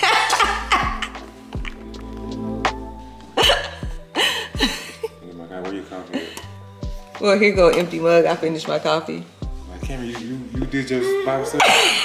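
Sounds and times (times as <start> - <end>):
woman laughing: 0.0 - 1.4, 3.4 - 5.2, 11.2 - 12.0.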